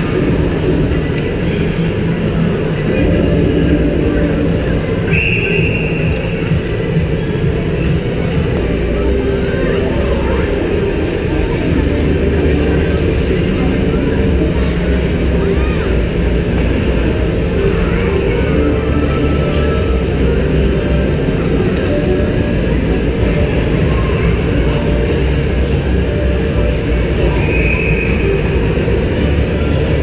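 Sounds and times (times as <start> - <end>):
low rumble of ice rink: 0.0 - 30.0
voices: 0.0 - 30.0.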